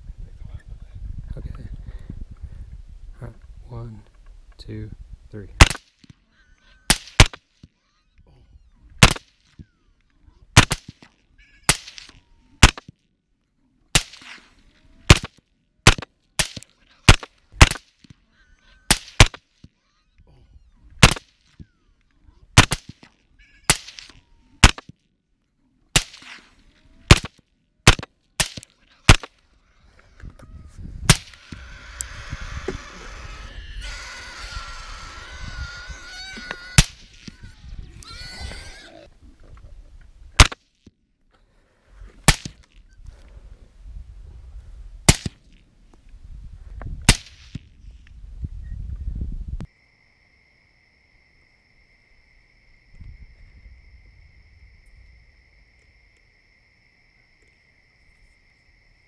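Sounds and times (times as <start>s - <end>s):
rifle shots with echo: 10.6s - 11.1s, 22.6s - 23.1s, 23.7s - 24.9s, 26.0s - 29.4s.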